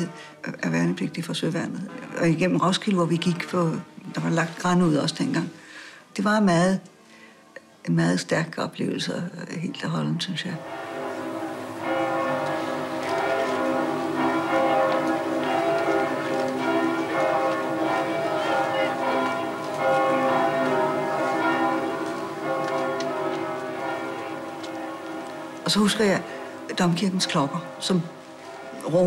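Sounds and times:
church bells ringing: 0:10.6 - 0:29.0.

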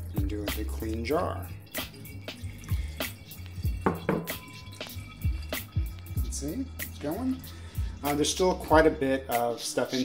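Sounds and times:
coffee dripping into glass jar: 0:00.3 - 0:08.9.

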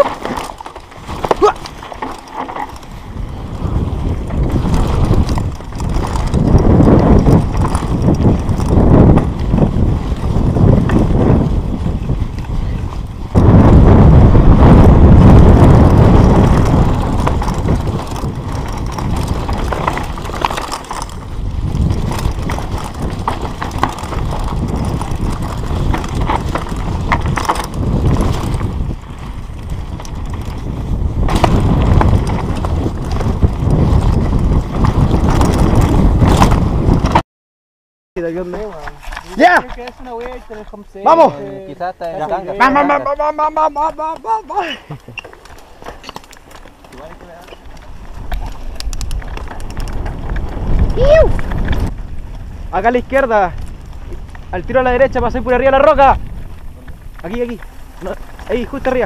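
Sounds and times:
bike knocking and rattling: 0:00.0 - 0:37.2, 0:38.2 - 0:59.0
tyres on dirt and stones: 0:00.0 - 0:37.2, 0:38.2 - 0:59.0
wind rushing on microphone: 0:00.0 - 0:37.2, 0:38.2 - 0:59.0.

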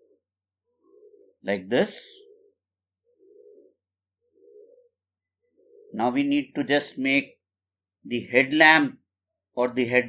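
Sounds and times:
bird cooing: 0:00.0 - 0:06.2.

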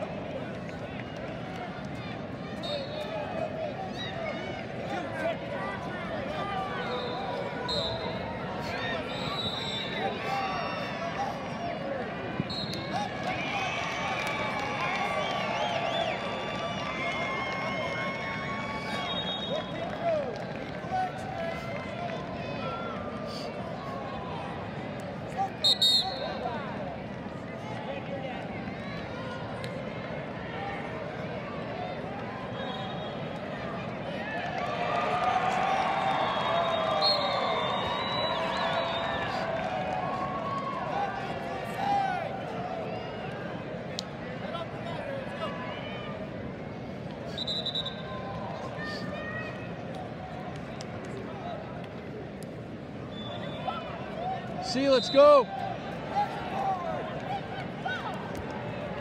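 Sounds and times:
crowd shouting and cheering: 0:00.0 - 0:59.0.

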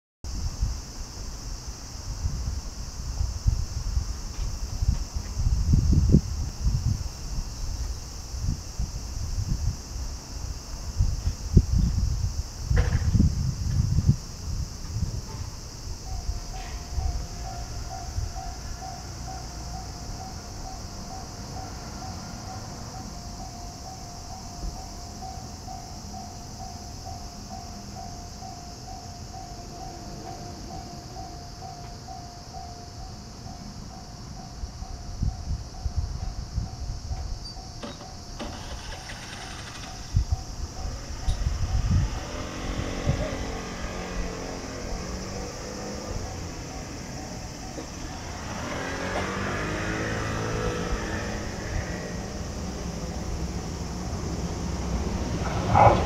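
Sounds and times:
electric train passing: 0:00.5 - 0:56.0
level-crossing alarm ringing: 0:16.0 - 0:42.1, 0:44.9 - 0:48.6.

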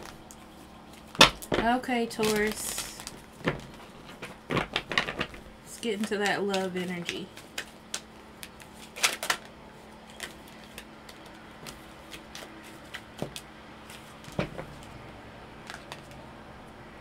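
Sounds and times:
cards being shuffled: 0:00.0 - 0:16.2.

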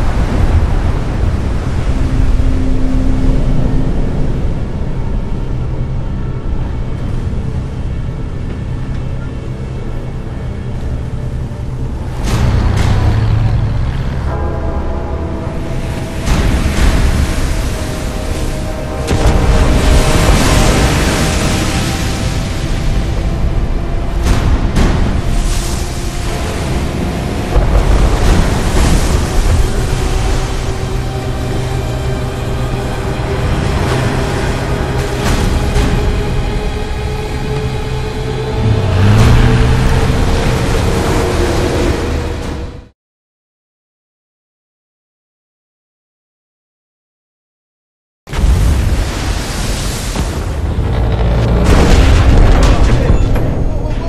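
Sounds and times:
crashing waves: 0:00.0 - 0:07.9, 0:11.8 - 0:42.9, 0:48.3 - 0:54.0
tense orchestral music: 0:00.0 - 0:43.0, 0:48.3 - 0:54.0
deep booms: 0:11.9 - 0:42.9, 0:48.3 - 0:54.0.

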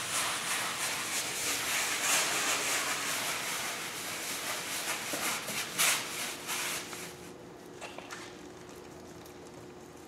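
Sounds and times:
cloth rubbing on wet wall: 0:00.0 - 0:07.2.

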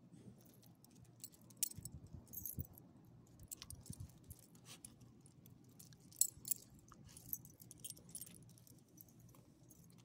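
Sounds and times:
dog collar tags jingling: 0:01.2 - 0:02.7, 0:06.0 - 0:09.9.

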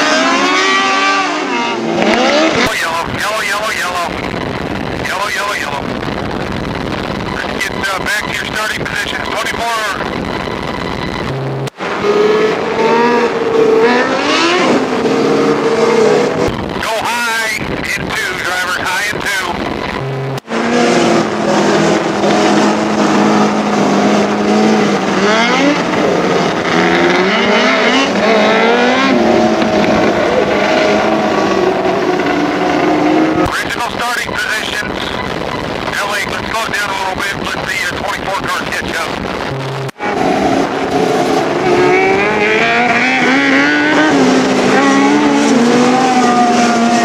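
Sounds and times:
sprint car engines revving: 0:00.0 - 0:47.0.

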